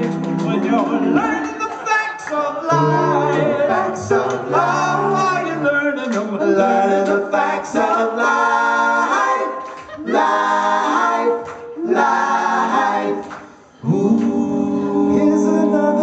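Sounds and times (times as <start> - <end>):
male a cappella group singing: 0.0 - 16.0.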